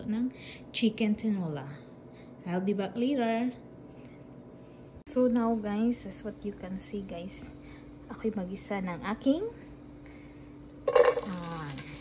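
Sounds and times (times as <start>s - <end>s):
garlic sizzling in hot oil: 5.2s - 12.0s.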